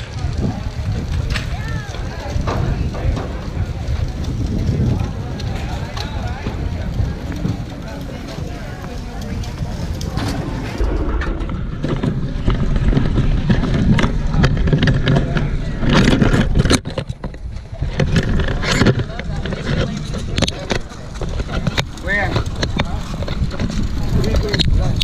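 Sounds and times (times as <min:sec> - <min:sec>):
faint voices: 0:00.0 - 0:25.0
microphone handling rubbing: 0:10.1 - 0:17.0.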